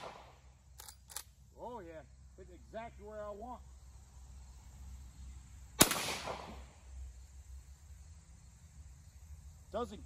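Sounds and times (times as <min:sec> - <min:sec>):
rifle shot with echo: 0:00.0 - 0:00.4, 0:05.8 - 0:06.7.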